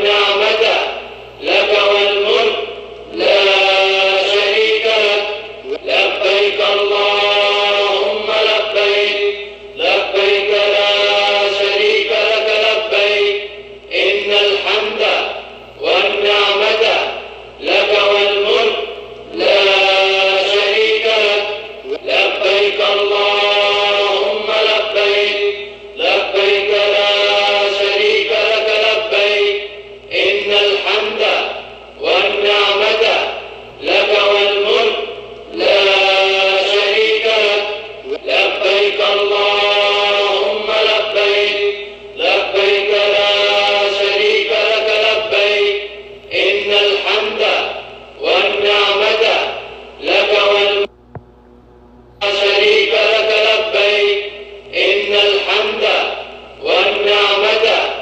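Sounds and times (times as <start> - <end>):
man chanting: 0.0 - 50.9, 52.2 - 58.0
breaths: 41.8 - 42.2.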